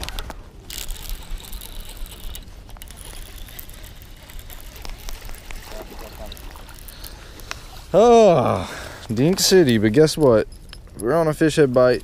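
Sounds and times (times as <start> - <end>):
fishing reel cranking: 0.0 - 7.5.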